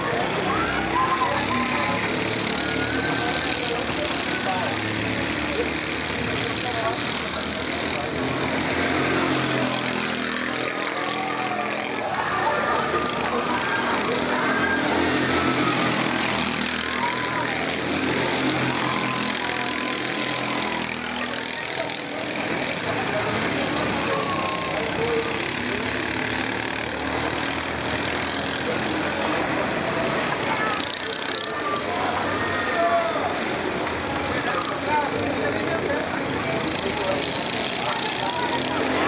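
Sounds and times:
kart engines revving: 0.0 - 39.0
unclear voices: 0.0 - 39.0.

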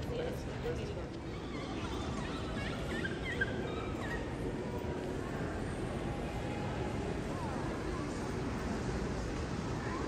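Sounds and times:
airport terminal background noise: 0.0 - 10.0.

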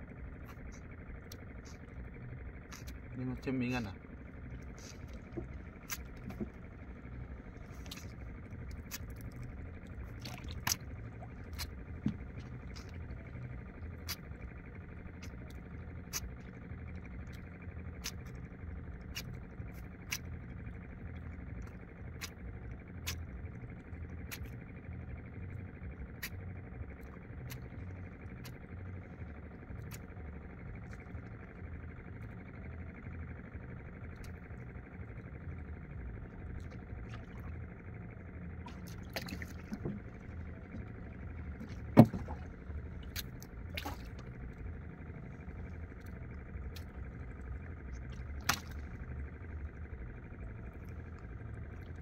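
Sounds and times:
faint hum: 0.0 - 52.0
low rumble: 0.0 - 52.0.

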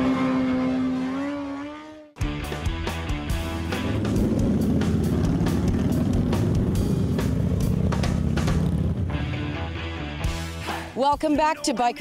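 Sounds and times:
motorcycle engine running: 0.0 - 10.4.

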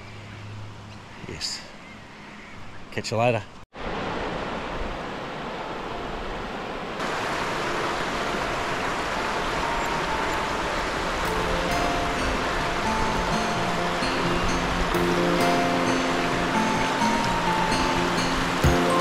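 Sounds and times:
river rushing over rocks: 3.8 - 19.0
background music sustained notes: 7.5 - 19.0.

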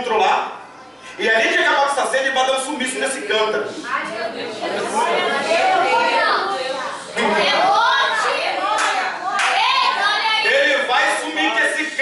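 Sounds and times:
man preaching into a microphone: 0.0 - 0.6, 1.2 - 3.7, 10.4 - 12.0.

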